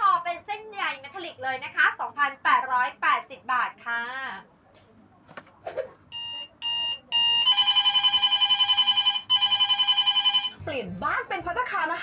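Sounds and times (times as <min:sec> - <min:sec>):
telephone ringing tone: 0:06.2 - 0:10.6.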